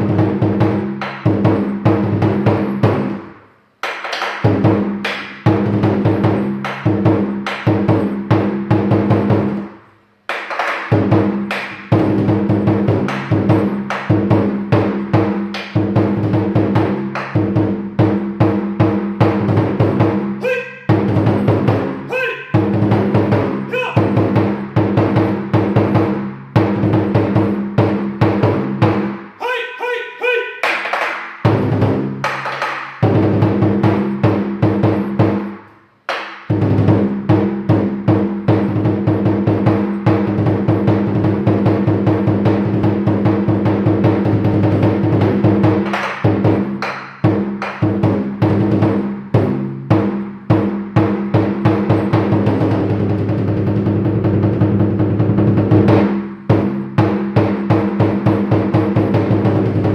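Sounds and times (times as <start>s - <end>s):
large drum beaten with sticks: 0.0s - 3.3s, 4.4s - 9.7s, 10.8s - 29.2s, 31.4s - 59.9s.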